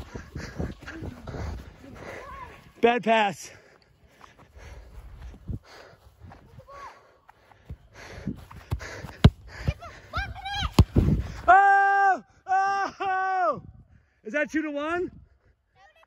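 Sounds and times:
wind on microphone: 0:00.0 - 0:02.1, 0:10.6 - 0:11.5.

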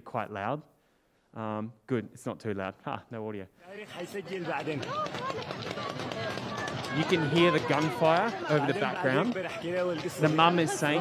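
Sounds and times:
voices speaking: 0:03.6 - 0:11.0.

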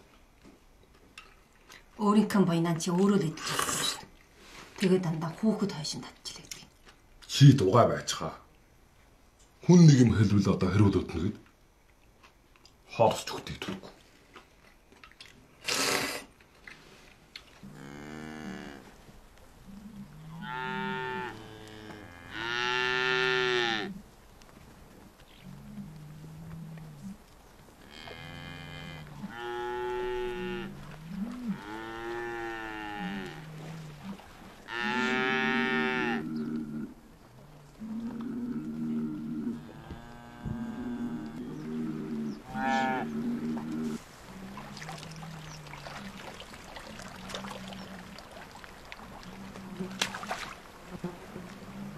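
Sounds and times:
cattle mooing: 0:17.6 - 0:18.8, 0:20.0 - 0:24.0, 0:27.8 - 0:37.0, 0:37.8 - 0:48.2.

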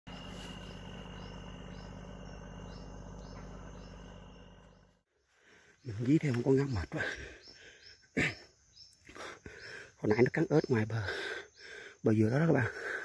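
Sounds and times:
low hum: 0:00.1 - 0:05.1
insects chirping: 0:00.1 - 0:13.0.

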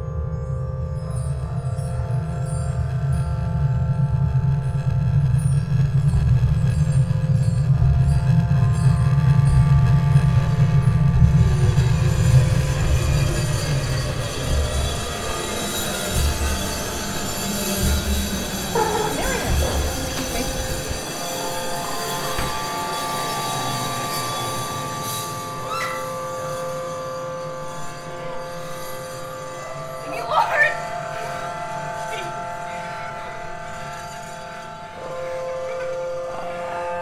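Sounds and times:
deep heavy drone: 0:00.0 - 0:37.0
harsh hissing high texture: 0:11.6 - 0:34.8.

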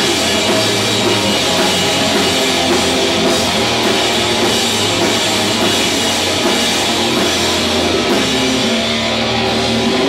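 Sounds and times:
drum kit with cymbals: 0:00.0 - 0:10.0
electric guitar: 0:00.0 - 0:10.0
rock band playing live: 0:00.0 - 0:10.0.

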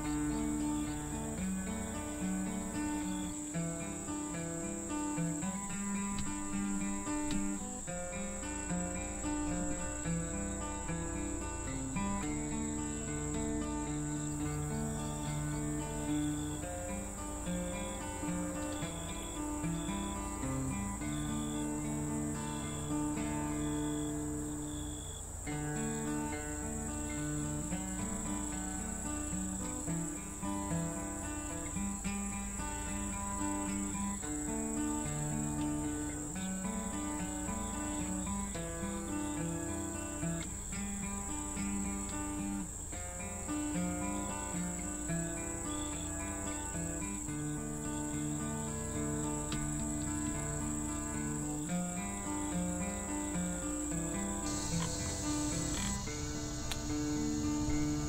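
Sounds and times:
crickets droning: 0:00.0 - 0:58.0.

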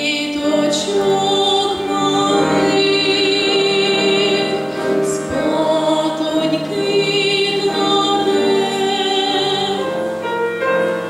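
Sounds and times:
girls singing in harmony: 0:00.0 - 0:11.0.

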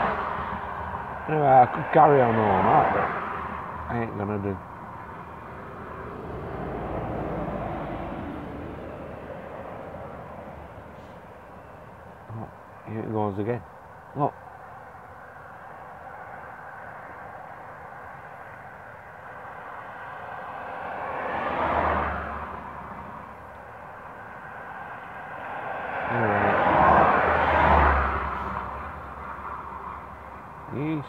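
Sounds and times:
road vehicles passing by: 0:00.0 - 0:31.0.

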